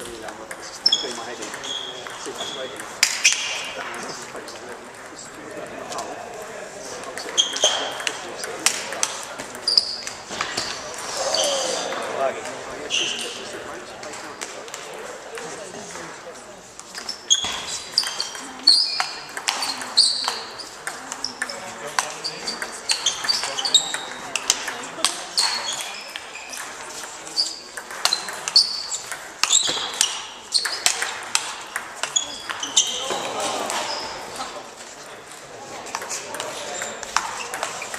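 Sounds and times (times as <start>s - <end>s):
shoes squeaking on floor: 0.0s - 4.2s, 7.0s - 14.6s, 16.8s - 37.9s
voices echoing in hall: 0.0s - 37.9s
table tennis ball clicking: 18.0s - 32.7s, 35.9s - 37.9s.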